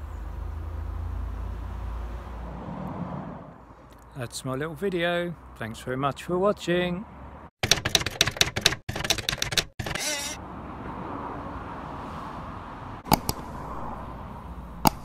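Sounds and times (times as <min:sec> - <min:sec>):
sharp mouse clicks: 0:07.6 - 0:09.7, 0:13.1 - 0:13.6
rapid typewriter-like clicking: 0:07.6 - 0:10.0.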